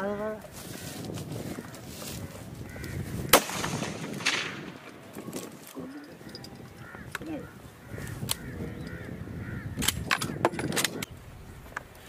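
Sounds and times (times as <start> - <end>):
gunshots: 3.3 - 5.6.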